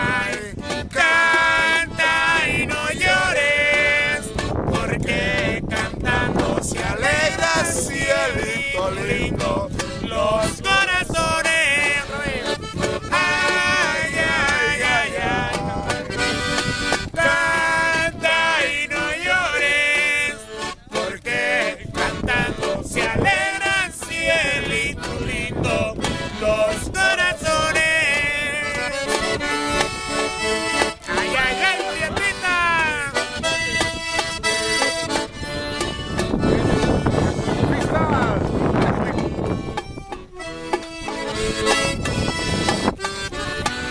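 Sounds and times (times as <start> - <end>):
men singing loudly: 0.0 - 16.1, 17.2 - 28.9, 31.0 - 33.2
button accordion playing: 0.0 - 43.9
hand drums: 30.7 - 43.9.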